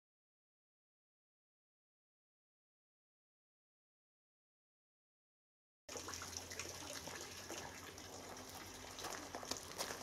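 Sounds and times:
trickle of running water: 0:05.9 - 0:10.0.

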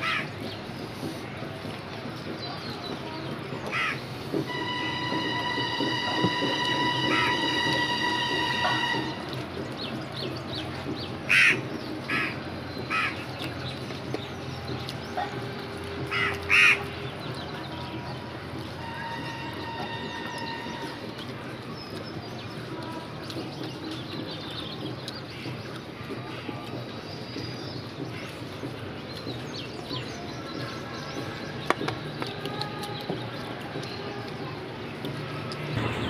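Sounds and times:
crows cawing: 0:00.0 - 0:00.3, 0:03.7 - 0:04.0, 0:11.3 - 0:13.2, 0:16.1 - 0:16.8.

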